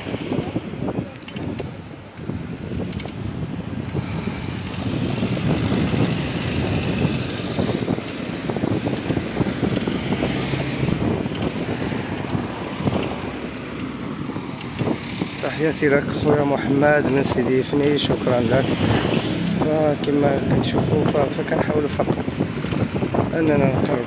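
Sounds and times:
road and traffic rumble: 0.0s - 24.0s
wind rushing over microphone: 0.0s - 24.0s.

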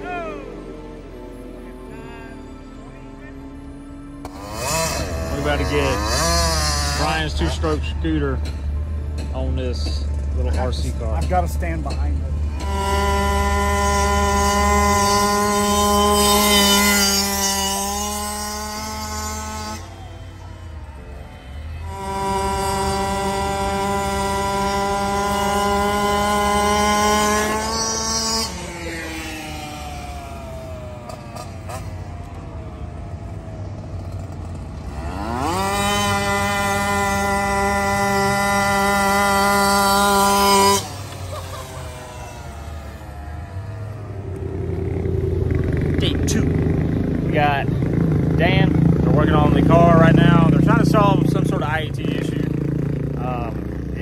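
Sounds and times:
electric motor of rc car whining: 4.2s - 8.2s, 12.4s - 46.1s.

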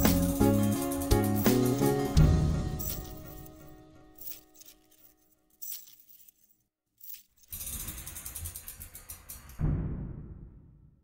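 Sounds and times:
metal door rattling as it rolls: 7.5s - 9.6s
metal door slamming boom: 9.5s - 11.0s.

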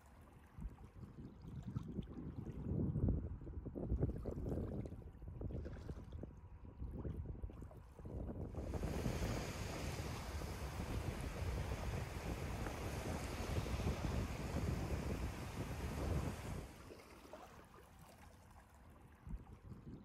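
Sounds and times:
wind buffeting microphone: 0.6s - 17.0s
lake waves washing onto sand: 8.5s - 17.5s.

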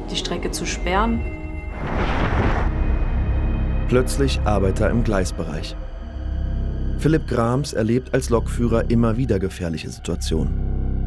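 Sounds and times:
dark documentary music: 0.0s - 11.0s
low rumble: 0.9s - 9.4s
rushing whoosh: 1.7s - 3.2s.

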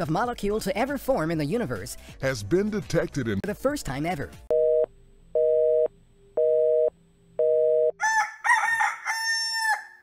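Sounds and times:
telephone busy signal: 4.5s - 8.0s
rooster crowing: 8.0s - 10.0s.

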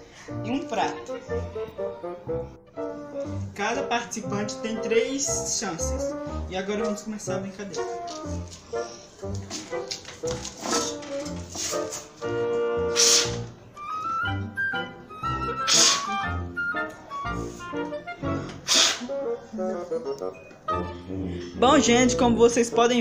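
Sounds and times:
background music with steady beat: 0.0s - 23.0s
hard puffs of breath: 12.9s - 13.5s, 15.5s - 16.2s, 17.4s - 19.2s.

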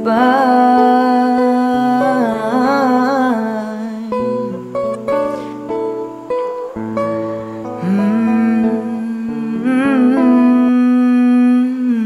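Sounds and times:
man singing long note: 0.0s - 5.6s, 7.7s - 12.0s
held guitar chords: 0.0s - 12.0s.

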